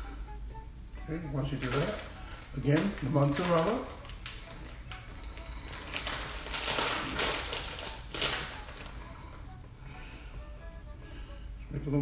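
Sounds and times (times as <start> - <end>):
plastic bag crinkling: 1.3 - 9.2.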